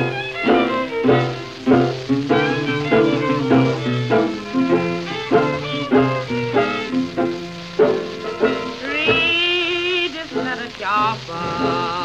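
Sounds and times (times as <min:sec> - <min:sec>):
plucked string notes: 0:00.0 - 0:12.0.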